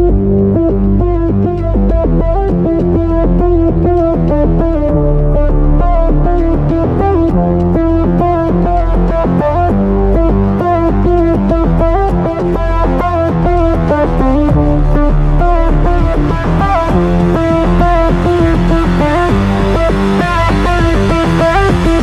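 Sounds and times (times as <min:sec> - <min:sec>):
electronic instrumental music: 0:00.0 - 0:22.0.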